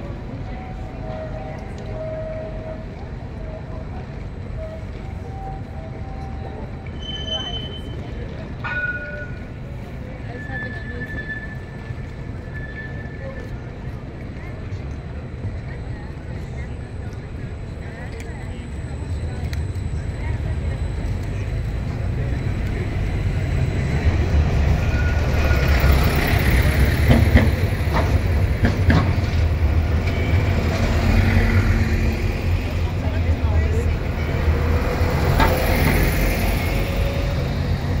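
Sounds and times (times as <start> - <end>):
tram passing: 0.0 - 38.0
bus passing: 5.9 - 38.0.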